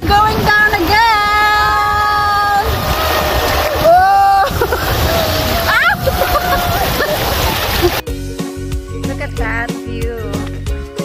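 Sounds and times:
microphone rumbling noise: 0.0 - 8.0
river water rushing and splashing: 2.4 - 8.0.

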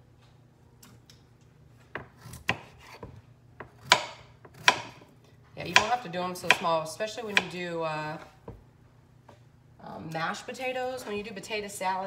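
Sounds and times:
knife chopping on wooden board: 1.9 - 5.0, 5.7 - 6.7, 7.3 - 7.6.

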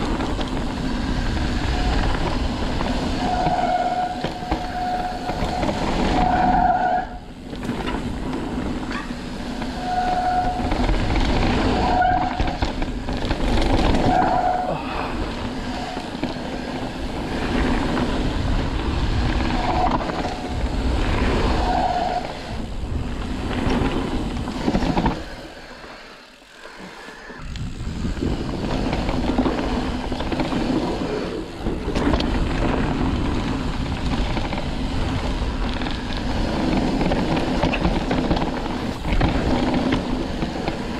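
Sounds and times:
wind on microphone: 0.0 - 25.6, 27.2 - 40.9
bike rattling: 0.0 - 40.9
bike tyres rolling on dirt: 0.0 - 40.9.

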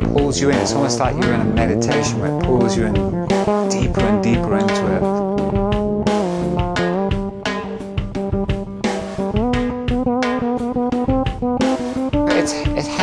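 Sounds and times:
fretless bass sliding notes: 0.0 - 7.5
steady drum beat: 0.0 - 13.0.

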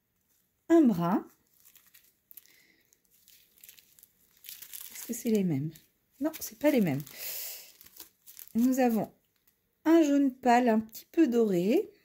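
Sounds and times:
plastic bags crinkling: 0.2 - 9.6.

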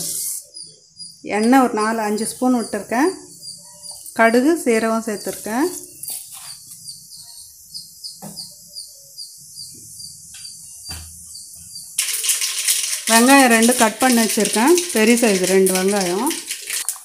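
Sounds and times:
seeds sizzling in hot oil: 0.0 - 0.4, 11.6 - 17.0
seeds popping: 12.0 - 17.0.

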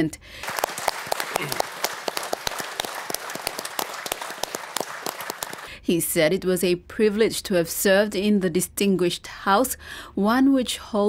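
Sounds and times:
crowd applauding: 0.4 - 5.8.

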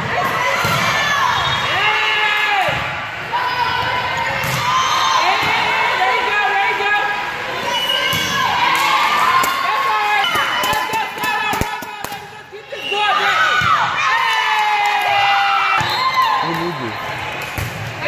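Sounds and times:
crowd shouting and cheering: 0.0 - 18.0.

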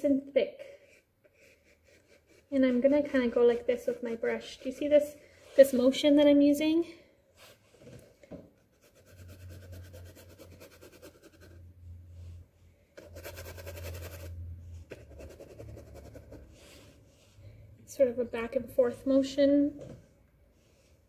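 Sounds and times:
paintbrush scraping on canvas: 0.8 - 5.9, 8.7 - 11.6, 13.0 - 17.0.

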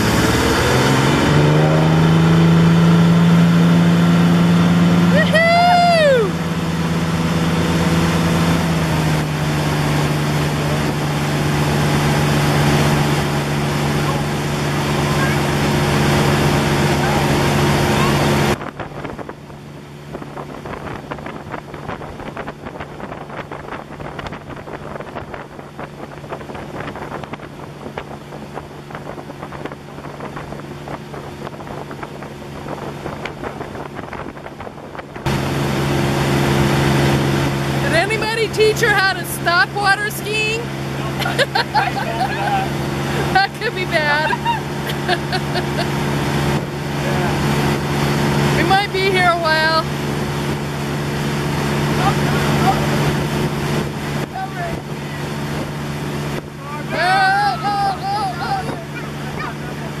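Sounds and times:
motorboat engine running hard: 0.0 - 60.0
wind buffeting microphone: 0.0 - 60.0
person whooping: 5.1 - 6.4, 44.2 - 44.7, 57.0 - 59.5.

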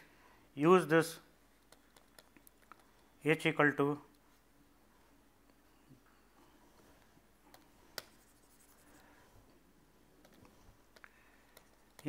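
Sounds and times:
stylus scratching: 8.0 - 9.2.

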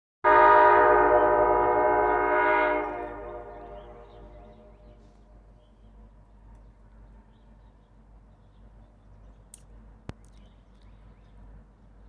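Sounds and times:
train horn blast: 0.2 - 5.1.

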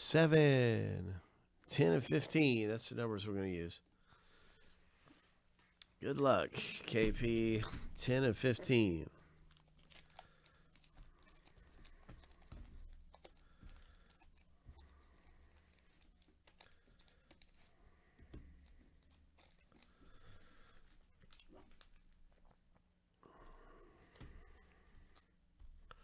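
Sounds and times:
foil wrappers crinkling: 8.7 - 22.2.

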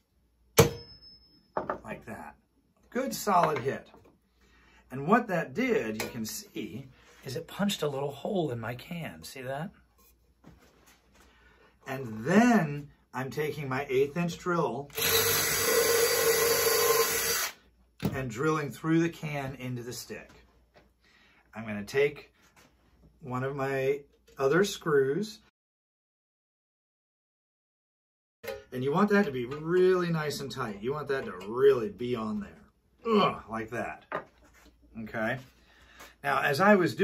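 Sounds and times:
hammer hitting awl on tin can: 0.6 - 1.0
cordless drill drilling through tin: 14.9 - 17.6.

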